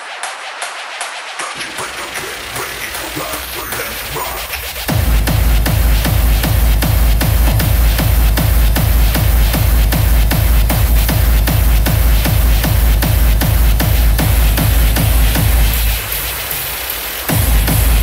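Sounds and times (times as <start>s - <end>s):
hardstyle dance music: 0.0s - 18.0s
distorted kick drum pounding: 0.9s - 18.0s
dense synth layers: 1.4s - 18.0s.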